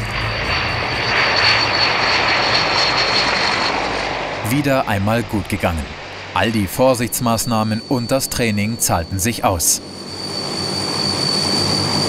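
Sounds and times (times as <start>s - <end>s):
steady high whine: 0.0s - 12.0s
turboprop engines roaring: 0.0s - 12.0s.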